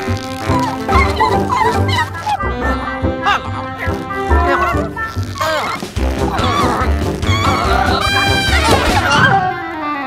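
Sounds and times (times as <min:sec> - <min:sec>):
cartoon background music: 0:00.0 - 0:10.0
high-pitched creature cries: 0:00.4 - 0:09.4.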